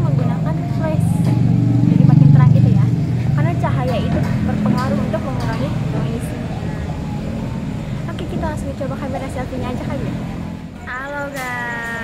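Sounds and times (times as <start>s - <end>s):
low urban background rumble: 0.0s - 12.0s.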